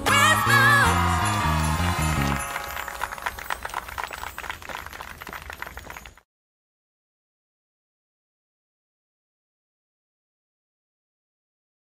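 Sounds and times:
christmas song instruments: 0.0 - 6.2
sleigh bells jingling: 0.0 - 6.2.

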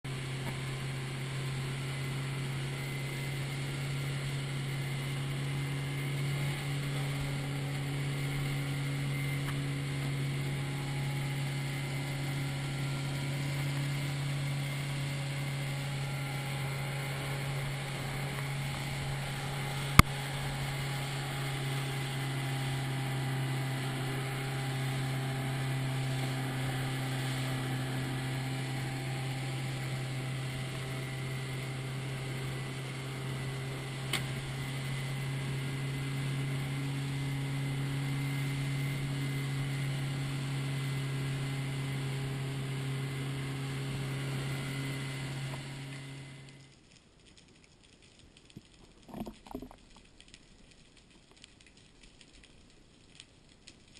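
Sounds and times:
outboard motor droning: 0.0 - 53.9.

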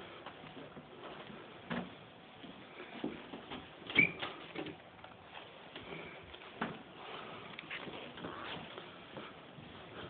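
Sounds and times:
footsteps in house: 0.0 - 10.0
short squeak: 4.0 - 4.3.

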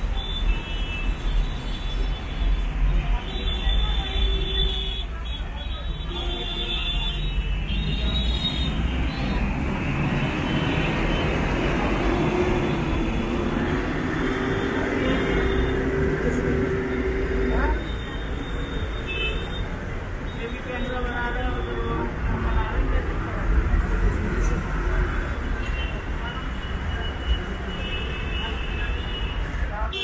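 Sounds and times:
road traffic rumbling: 0.0 - 30.0.

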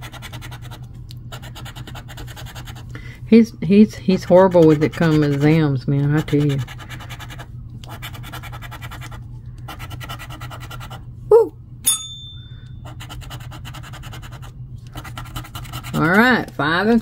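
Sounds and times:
short ringing ping: 11.8 - 12.8.

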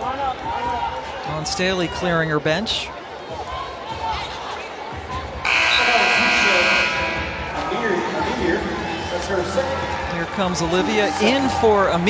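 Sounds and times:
arena horn blast: 5.5 - 7.5.

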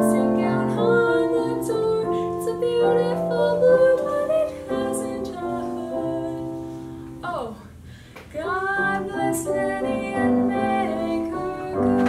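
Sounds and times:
girl singing: 0.0 - 6.6, 8.3 - 12.0
piano chords: 0.0 - 7.5, 8.5 - 12.0.

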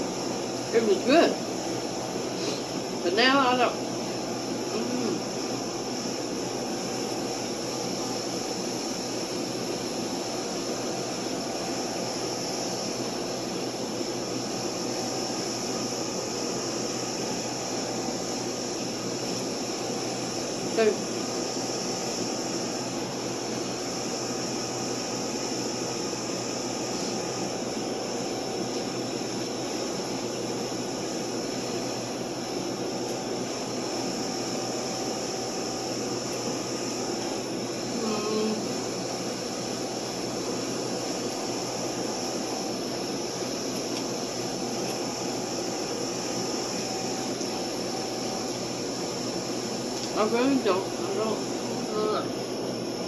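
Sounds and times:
ventilation equipment humming: 0.0 - 53.0.

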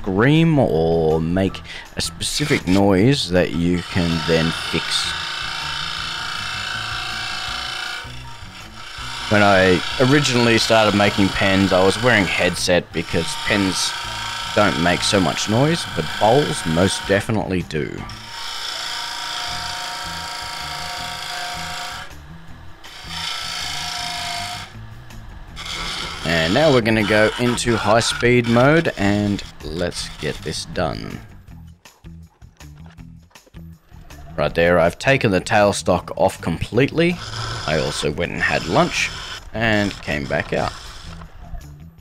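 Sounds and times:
lathe gouge scraping wood: 1.5 - 31.4, 36.5 - 41.4.

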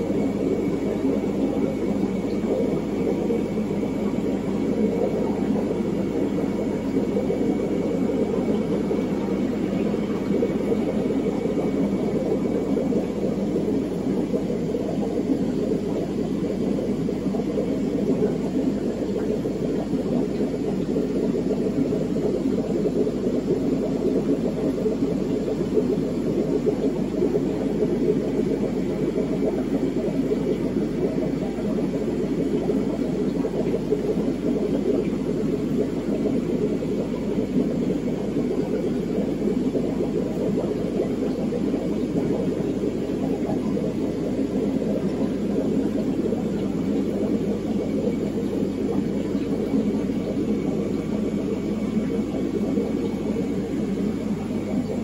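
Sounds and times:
aquarium air pumps humming: 0.0 - 55.0
water filtration rushing: 0.0 - 55.0.

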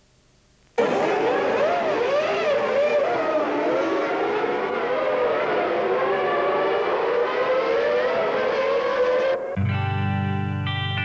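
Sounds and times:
racing car engines revving: 0.8 - 9.6.

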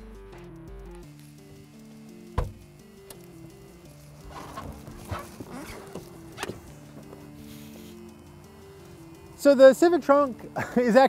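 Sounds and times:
background music: 0.0 - 11.0
sharp thump: 2.4 - 2.6
rustling and handling noises: 4.2 - 8.1.

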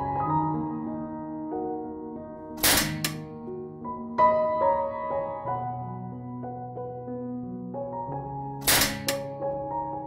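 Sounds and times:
soft piano music: 0.0 - 10.0
mouse trap door snapping shut: 2.6 - 3.3, 8.6 - 9.4.

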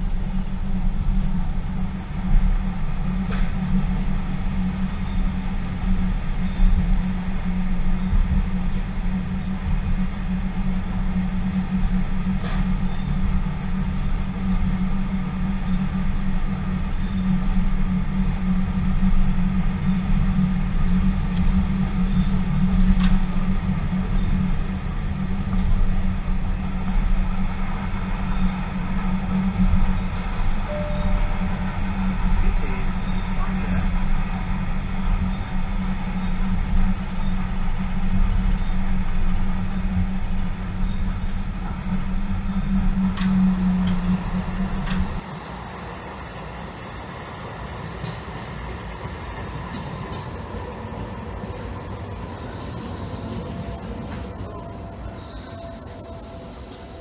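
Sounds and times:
train low rumble: 0.0 - 57.0.

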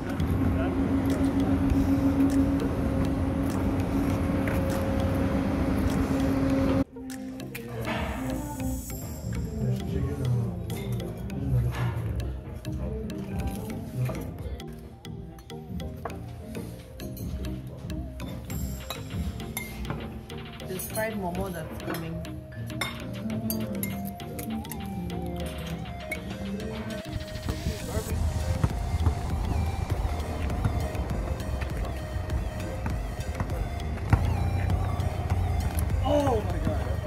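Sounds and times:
people's voices: 0.0 - 6.4, 25.3 - 37.0
background music: 0.0 - 37.0
dishes and cutlery clinking: 22.8 - 24.1.

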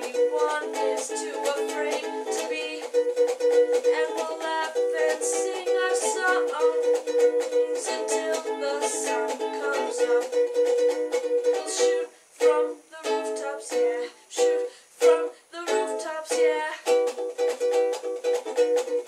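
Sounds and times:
ukulele strummed chords: 0.0 - 19.0.

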